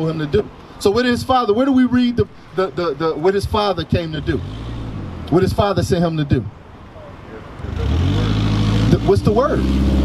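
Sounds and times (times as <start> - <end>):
car engine approaching: 2.6 - 10.0.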